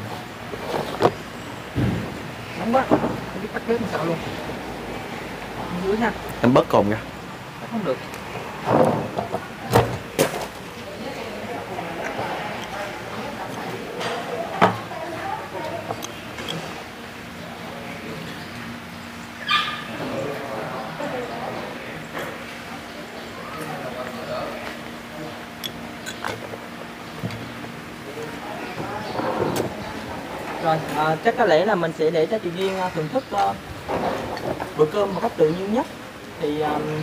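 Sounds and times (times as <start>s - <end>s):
dog yelp: 19.4s - 20.0s.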